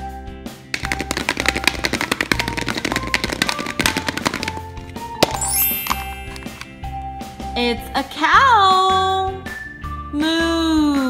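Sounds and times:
cheerful background music: 0.0 - 11.0.

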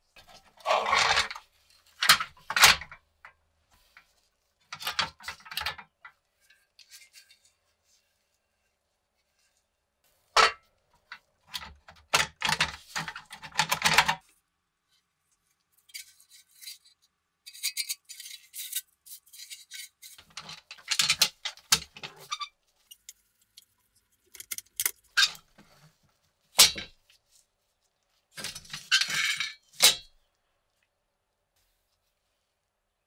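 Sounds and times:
metal toy parts clanking on wood: 0.6 - 1.4, 17.5 - 23.1, 28.4 - 30.1.

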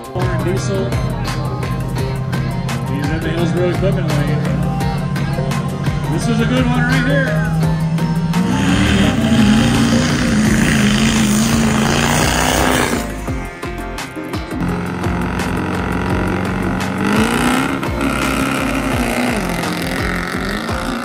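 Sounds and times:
background music with steady beat: 0.0 - 21.0
diesel trucks accelerating: 0.0 - 21.0.

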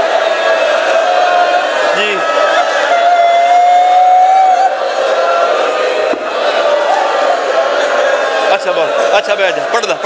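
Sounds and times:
crowd of mourners crying out: 0.0 - 10.0.

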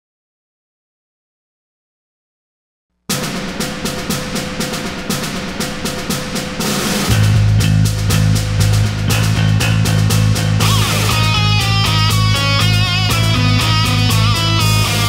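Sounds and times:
fast dense drumming: 3.1 - 15.0
heavy bass: 3.1 - 15.0
rock music: 3.1 - 15.0.

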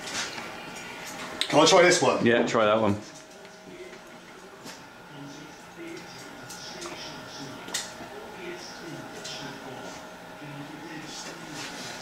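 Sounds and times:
faint background voices: 3.0 - 12.0.

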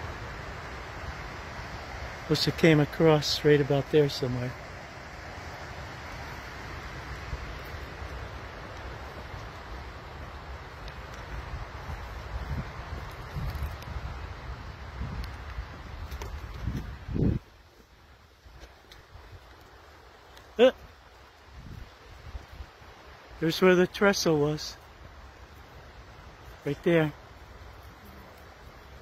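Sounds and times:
wind buffeting microphone: 4.6 - 17.6, 21.5 - 22.8.

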